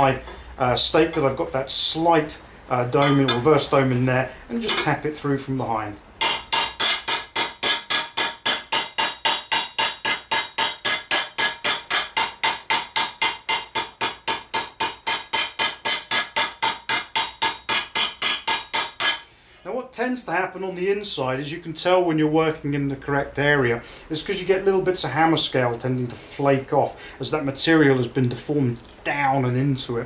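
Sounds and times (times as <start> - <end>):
hammer tapping metal: 6.2 - 19.3.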